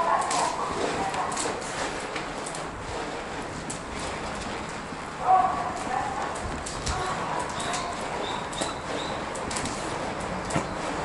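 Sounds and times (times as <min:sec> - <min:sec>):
wheelchair rolling rumbling hiss: 0:00.0 - 0:11.0.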